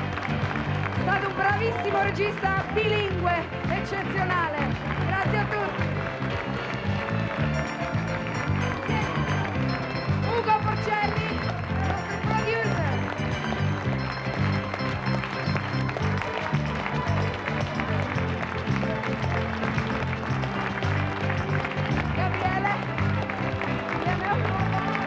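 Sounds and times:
upbeat music with bass beat: 0:02.2 - 0:25.0.

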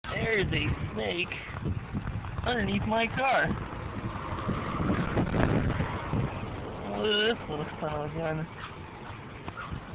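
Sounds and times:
wind buffeting microphone: 0:00.0 - 0:09.9.

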